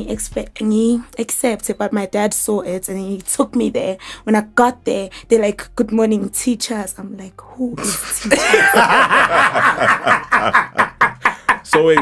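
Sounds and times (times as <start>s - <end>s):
woman laughing: 7.8s - 12.0s.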